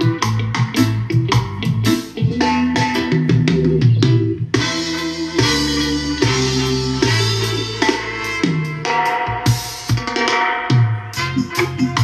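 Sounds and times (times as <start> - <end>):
low bass notes: 0.0 - 10.0, 11.1 - 12.0.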